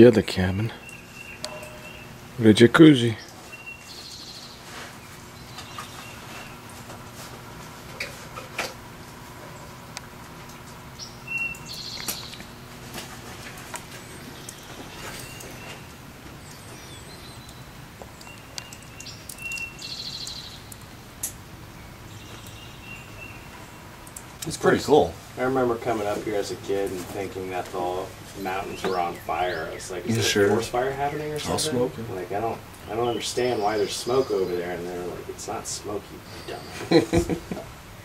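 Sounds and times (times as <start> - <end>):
small birds chirping and trilling: 0.0 - 7.4, 9.4 - 38.0
faint steady hum: 0.0 - 38.0.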